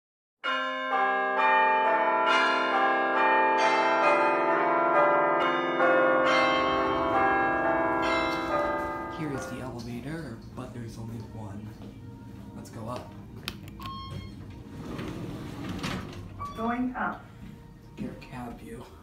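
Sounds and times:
bell tones ringing: 0.4 - 9.8, 13.8 - 14.4.

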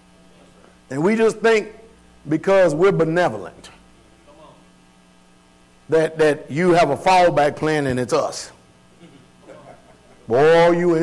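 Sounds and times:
electrical mains hum: 0.0 - 11.0
man speaking: 0.4 - 4.7, 5.9 - 8.6, 10.3 - 11.0.

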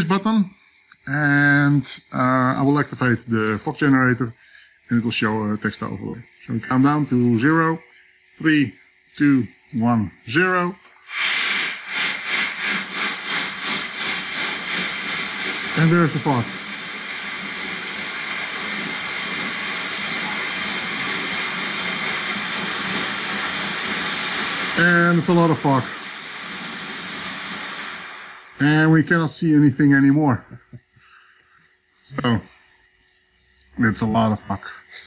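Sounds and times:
fog machine hissing: 0.0 - 35.0.

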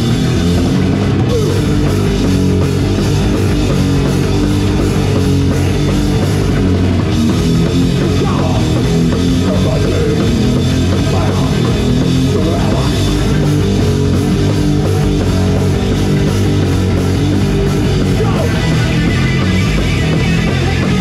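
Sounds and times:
death metal band playing live: 0.0 - 21.0.

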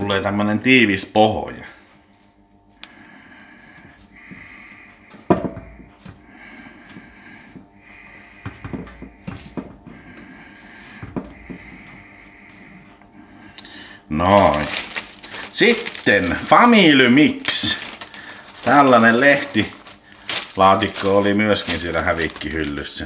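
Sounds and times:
breathing close to microphone: 2.8 - 14.1, 14.7 - 16.5, 17.6 - 22.4.

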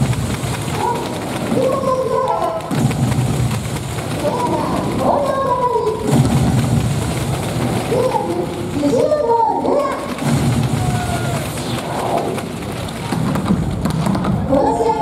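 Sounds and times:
low rumble of crowd: 0.0 - 15.0
voices calling out: 3.7 - 13.4.

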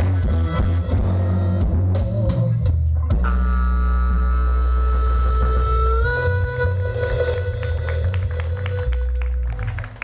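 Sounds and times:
low bass guitar note: 0.0 - 8.2.

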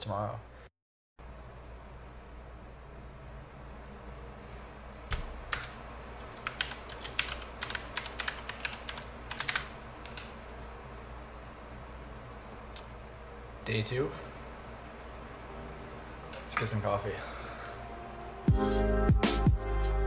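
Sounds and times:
low room hum: 0.0 - 20.0
keyboard typing: 5.5 - 10.3.

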